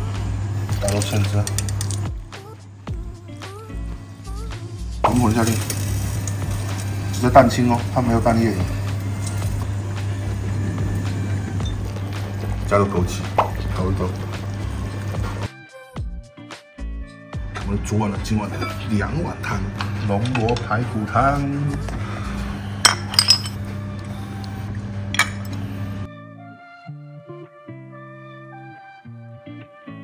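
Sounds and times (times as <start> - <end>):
steady low hum: 0.0 - 15.5
background music: 0.0 - 30.0
spoon clinking on porcelain bowl: 22.8 - 23.6.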